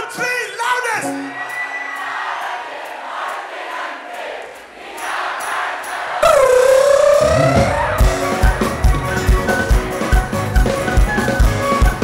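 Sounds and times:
crowd cheering: 1.0s - 9.1s
long held note bending in pitch: 6.2s - 8.0s
live folk-rock band: 6.2s - 12.0s
drum kit steady beat: 7.5s - 12.0s.

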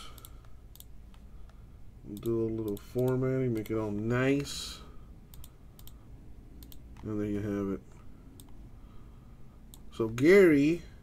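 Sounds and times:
faint computer mouse clicks: 0.1s - 1.6s, 5.3s - 6.0s, 6.6s - 6.8s, 8.4s - 8.6s.

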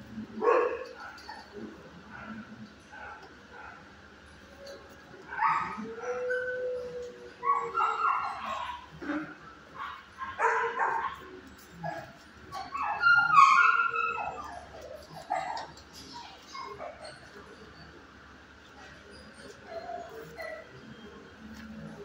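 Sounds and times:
dogs barking and yipping: 0.4s - 18.0s, 18.7s - 22.0s
dog whining: 4.5s - 9.2s, 11.7s - 18.0s, 18.8s - 22.0s.

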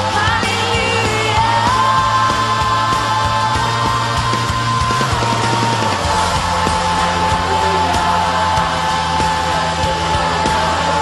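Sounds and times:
distorted electric guitars: 0.0s - 11.0s
drum beat: 0.0s - 11.0s.

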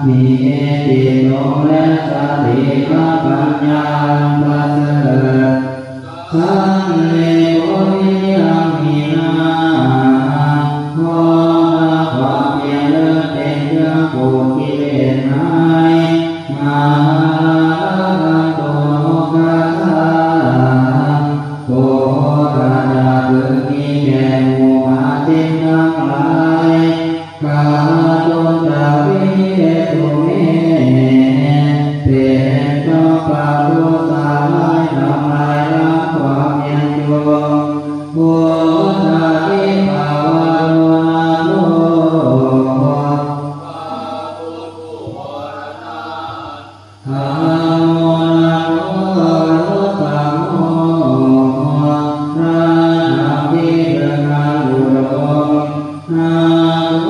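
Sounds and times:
monks chanting in unison: 0.0s - 57.0s.

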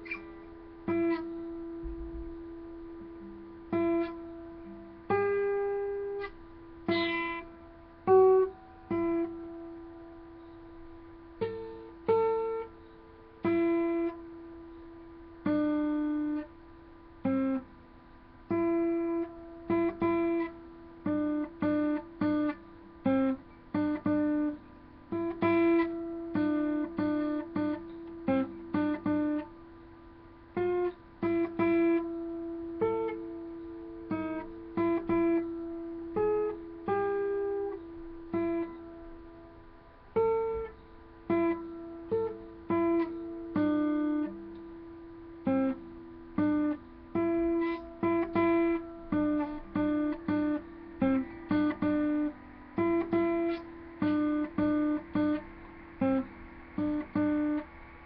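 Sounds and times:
acoustic guitar played slowly: 0.0s - 58.0s.

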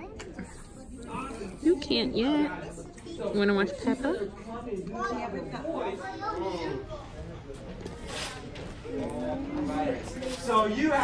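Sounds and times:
indistinct chatter of voices: 0.0s - 11.0s.

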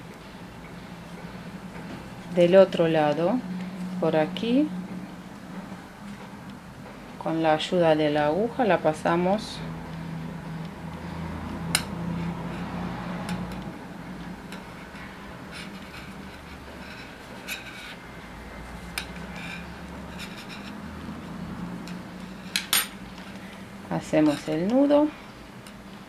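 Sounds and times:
low steady hum: 0.0s - 26.0s.

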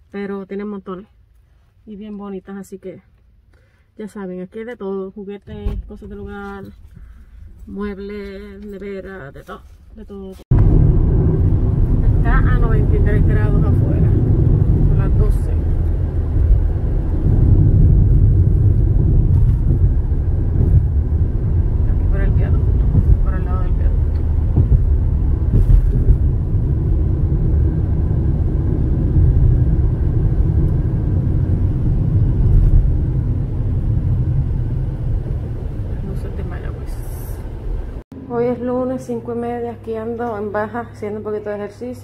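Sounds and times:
car cabin road and engine noise: 0.0s - 42.0s.

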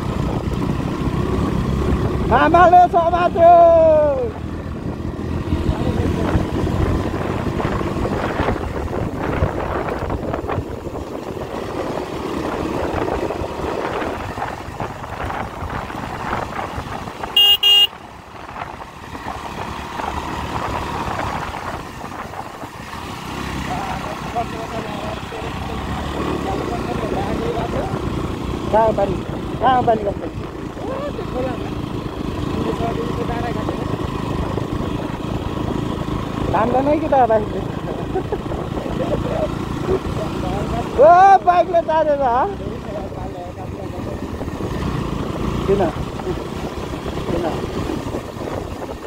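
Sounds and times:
motorcycle engine rumble: 0.0s - 49.0s
wind noise on microphone: 4.9s - 17.6s, 43.6s - 49.0s
vehicle horn beeps: 17.4s - 18.0s.

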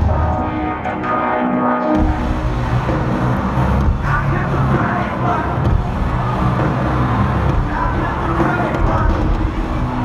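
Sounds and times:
distorted live band music: 0.0s - 10.0s
heavy steady bass: 2.0s - 10.0s.

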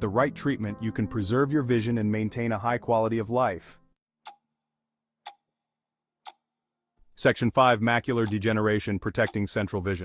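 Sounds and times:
slow even ticking: 4.2s - 4.4s, 5.2s - 5.5s, 6.2s - 6.5s, 9.2s - 9.5s.

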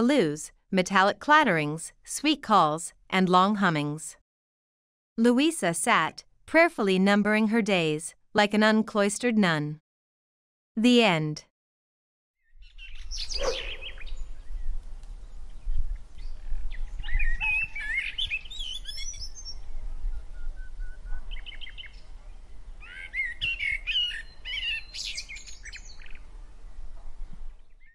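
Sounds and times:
songbirds chirping and warbling: 12.4s - 26.3s.

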